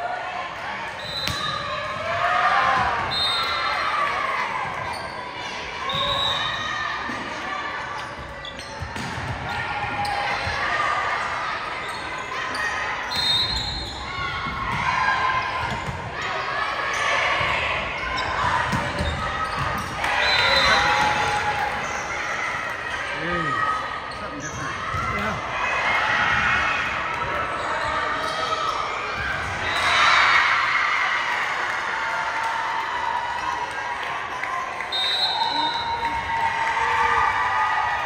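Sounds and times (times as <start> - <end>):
people shouting and cheering: 0.0 - 38.0
sneakers squeaking on court: 4.7 - 6.6, 7.9 - 10.7, 17.8 - 22.2, 24.0 - 25.4.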